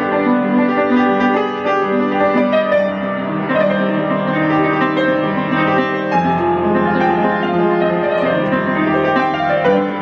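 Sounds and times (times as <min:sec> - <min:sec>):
piano chords and melody: 0:00.0 - 0:10.0.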